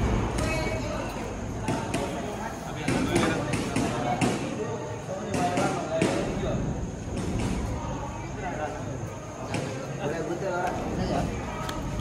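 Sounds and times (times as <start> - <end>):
young men talking: 0.0 - 12.0.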